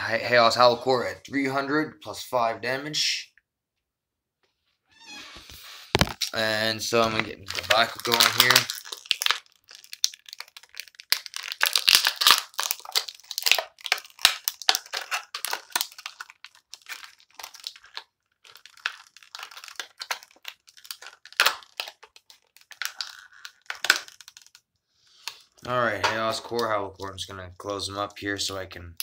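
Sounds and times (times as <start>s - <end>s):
plastic wrapper crinkling: 5.4s - 26.8s.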